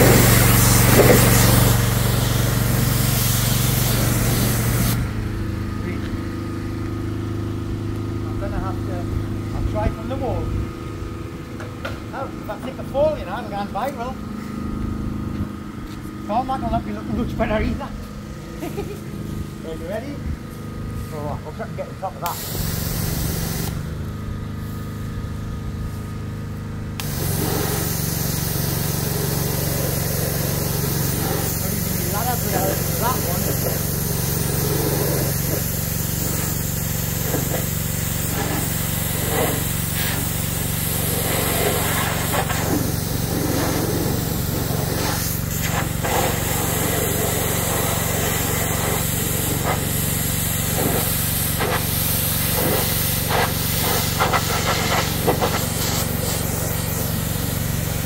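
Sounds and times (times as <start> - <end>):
pressure washer spray hiss: 0.0 - 5.2, 22.2 - 23.9, 27.0 - 58.0.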